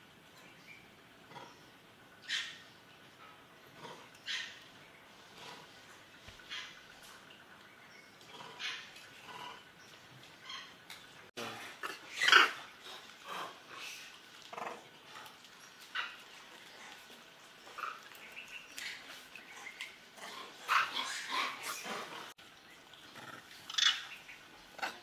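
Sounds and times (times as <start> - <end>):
macaques giving harsh calls: 11.7 - 12.6.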